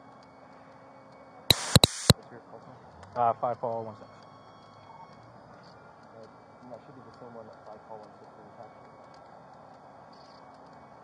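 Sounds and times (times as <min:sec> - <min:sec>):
police radio static bursts: 0:01.5 - 0:02.2.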